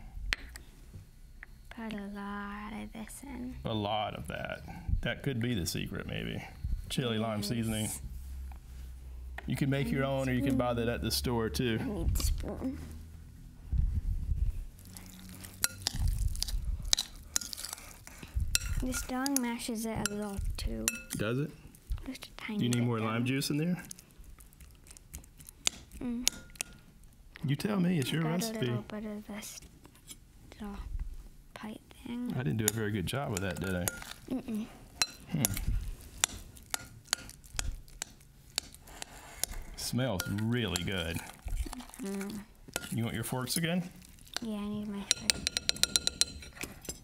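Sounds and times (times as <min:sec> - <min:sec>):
spoon mashing avocado: 0:14.8 - 0:21.9, 0:22.6 - 0:26.9, 0:32.3 - 0:47.0
fork scraping a glass bowl: 0:15.1 - 0:16.0, 0:16.9 - 0:19.2, 0:32.7 - 0:34.2, 0:35.0 - 0:42.1, 0:42.7 - 0:43.7, 0:45.1 - 0:47.0
spoon clinking against glass: 0:15.6 - 0:16.0, 0:20.9 - 0:21.2, 0:32.7 - 0:34.2, 0:35.0 - 0:35.6, 0:40.2 - 0:41.1, 0:42.8 - 0:43.0, 0:45.1 - 0:47.0.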